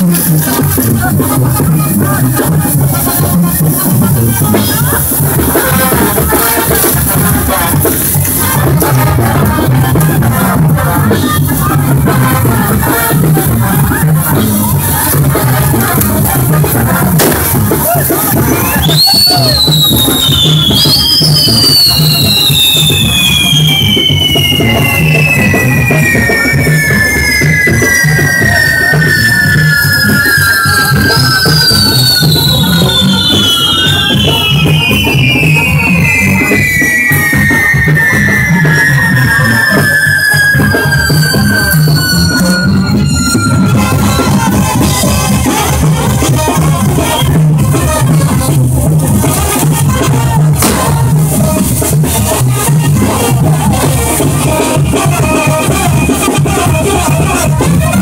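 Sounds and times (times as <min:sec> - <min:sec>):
music with drums: 0:00.0 - 0:58.0
whistling fireworks: 0:00.1 - 0:58.0.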